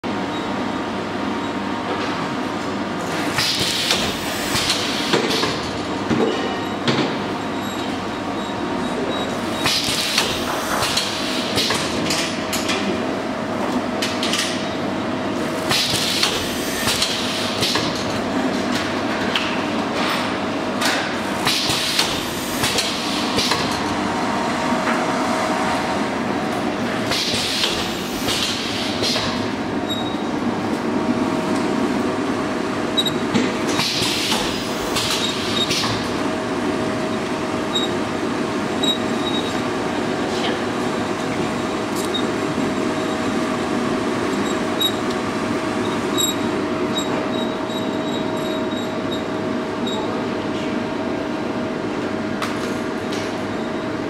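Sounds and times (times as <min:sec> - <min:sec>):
machine humming with light clicking: 0:00.2 - 0:54.0.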